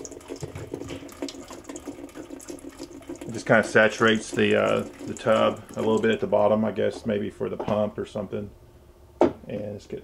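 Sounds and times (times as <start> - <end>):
water running into washer tub: 0.0 - 7.0.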